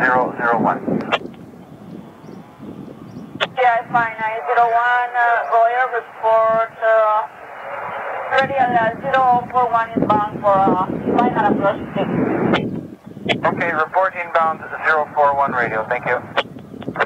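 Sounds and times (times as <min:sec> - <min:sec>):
radio voice chatter: 0:00.0 - 0:01.3, 0:03.4 - 0:17.0
radio hiss: 0:00.0 - 0:01.4, 0:03.4 - 0:17.0
radio click: 0:01.0 - 0:02.0, 0:13.3 - 0:13.5, 0:15.9 - 0:17.0.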